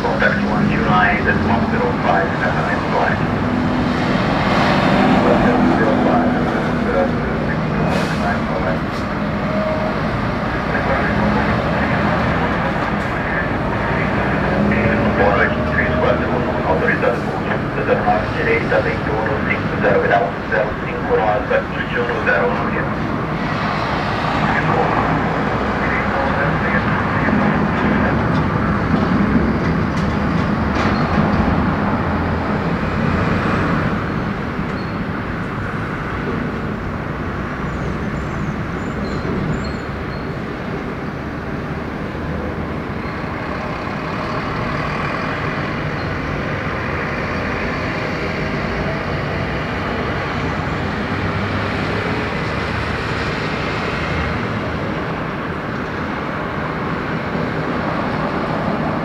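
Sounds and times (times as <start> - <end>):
jet engines rumbling: 0.0 - 59.0.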